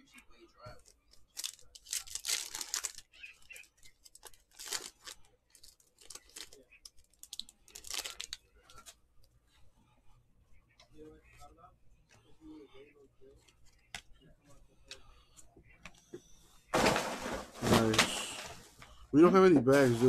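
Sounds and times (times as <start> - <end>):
handling of cards: 0.7 - 9.0
foil wrapper tearing and crinkling: 1.2 - 8.4.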